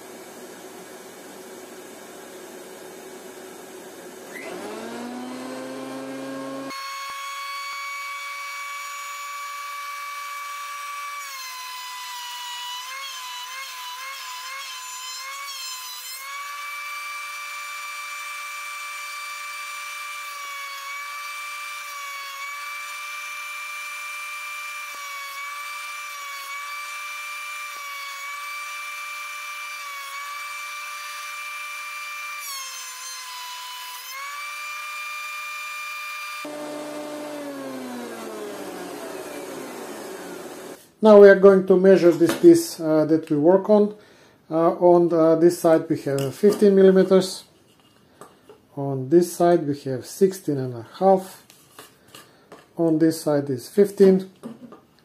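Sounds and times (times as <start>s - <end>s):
planer motor whining: 4.2s - 11.3s, 33.7s - 40.8s.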